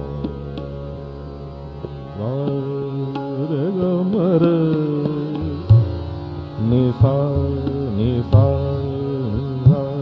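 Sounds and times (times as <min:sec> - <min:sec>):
man singing long held note: 0:02.1 - 0:10.0.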